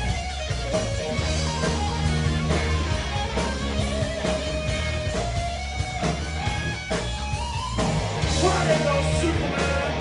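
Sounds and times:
electric guitar: 0.0s - 10.0s
live rock band playing: 0.0s - 10.0s.

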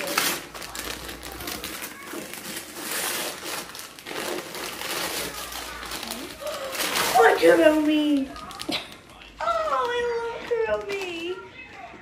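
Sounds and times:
wrapping paper tearing and crinkling: 0.0s - 12.0s.

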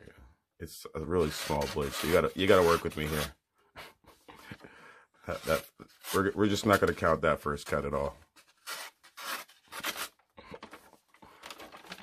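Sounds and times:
paper rustling: 8.2s - 12.0s
knife slicing paper: 8.4s - 10.2s.

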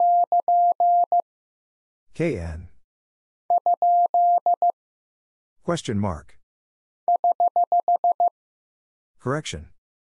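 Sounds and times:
morse code dits: 3.5s - 4.7s, 7.1s - 8.3s.

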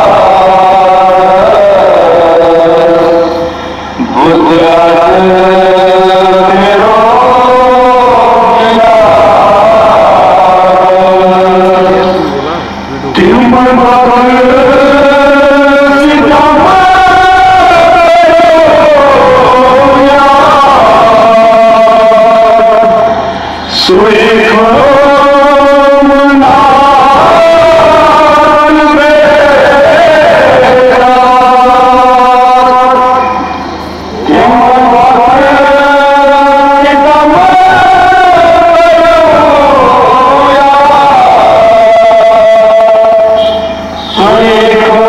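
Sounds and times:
crowd noise: 0.0s - 45.0s
man singing a long note: 0.0s - 45.0s
men chanting: 0.0s - 45.0s.

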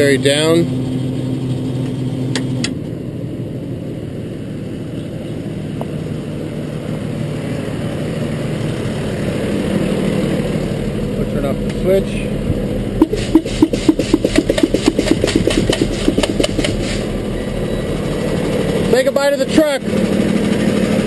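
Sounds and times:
truck engine idling: 0.0s - 21.0s
sharp clicks: 13.0s - 17.0s.

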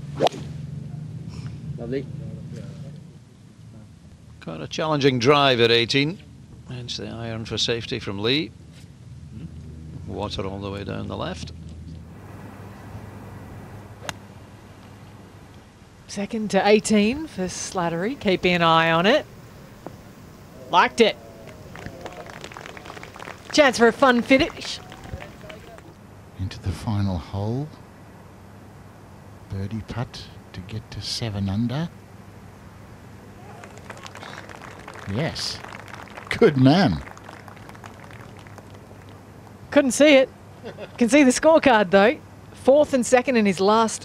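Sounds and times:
low steady background noise: 0.0s - 44.0s
golf iron hitting ball: 14.0s - 14.3s
faint distant voices: 17.8s - 26.4s.

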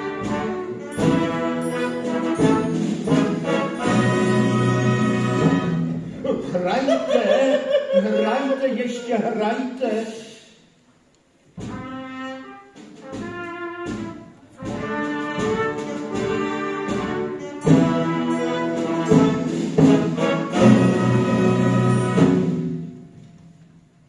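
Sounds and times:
trumpet fanfare: 0.0s - 6.0s, 11.6s - 22.9s
orchestral accompaniment: 0.0s - 6.7s, 11.5s - 23.7s.

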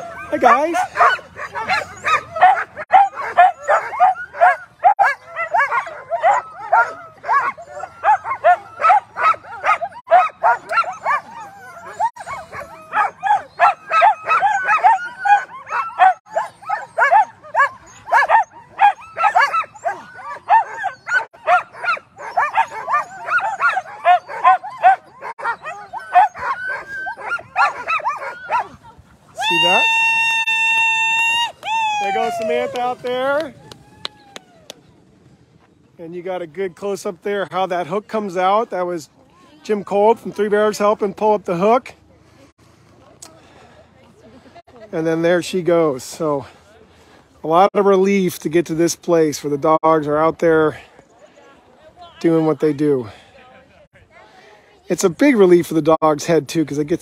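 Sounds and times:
sled dogs barking and yelping: 0.0s - 35.5s.

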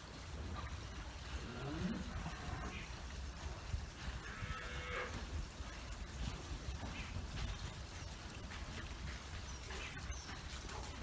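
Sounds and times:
cow mooing: 1.4s - 2.7s, 4.2s - 5.1s.

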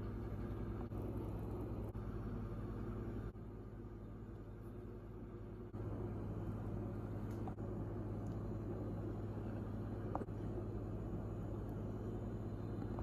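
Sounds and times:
low mechanical motor hum: 0.0s - 13.0s.

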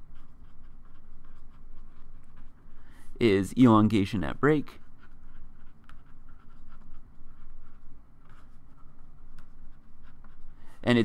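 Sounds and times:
marker scratching on paper: 0.0s - 3.5s, 4.4s - 11.0s.

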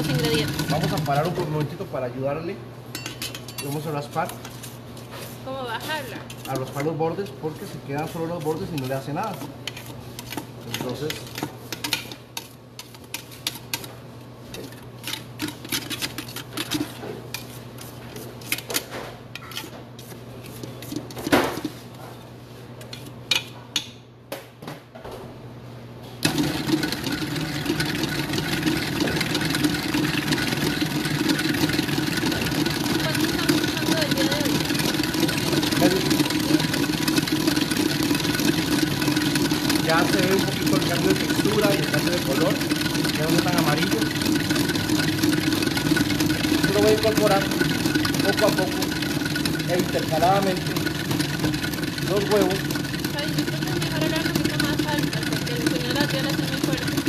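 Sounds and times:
electric stand mixer running: 0.0s - 2.2s, 26.2s - 57.0s
bowl being scraped: 6.2s - 13.9s, 19.4s - 21.9s.

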